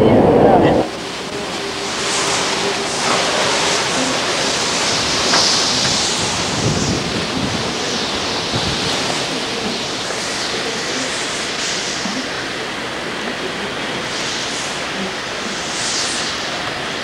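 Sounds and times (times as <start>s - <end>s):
strong wind rushing: 0.0s - 12.7s
wind buffeting microphone: 0.0s - 14.4s.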